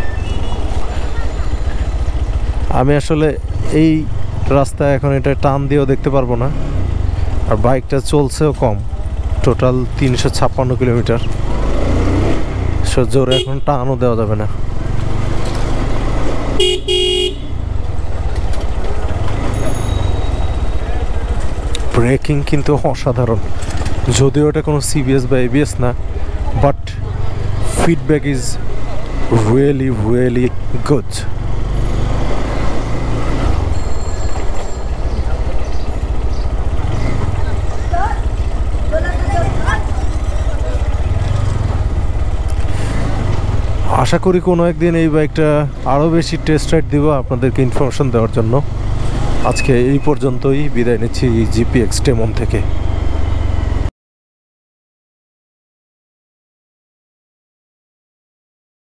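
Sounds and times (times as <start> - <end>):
motorcycle engine running: 0.1 - 13.5, 14.5 - 22.6, 28.6 - 44.4
vehicle horn beeps: 13.3 - 13.7, 16.6 - 17.6.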